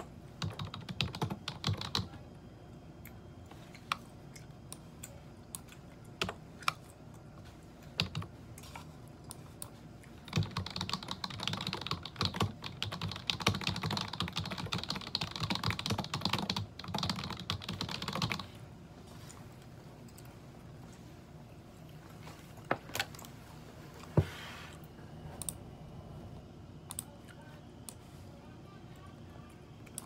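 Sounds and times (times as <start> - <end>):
computer keyboard typing: 0.0 - 2.2, 8.0 - 8.7, 9.3 - 18.6, 26.9 - 27.1.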